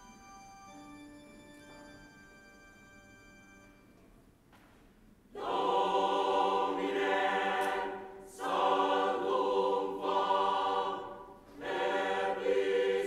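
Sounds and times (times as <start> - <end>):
soft held instrumental notes: 0.0 - 8.1
choir singing: 5.3 - 13.0.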